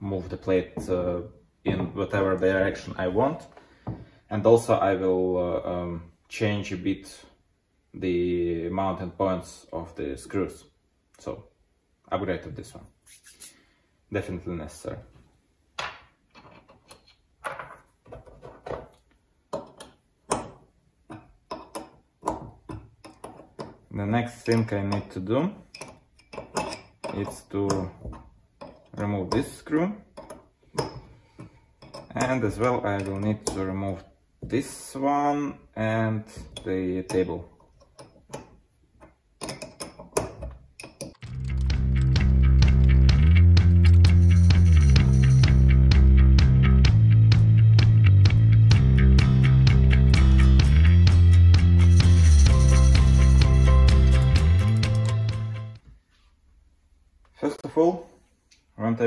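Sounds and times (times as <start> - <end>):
steel parts clinking: 24.3 - 27.4, 31.8 - 33.7
rock music with guitar: 41.2 - 55.8.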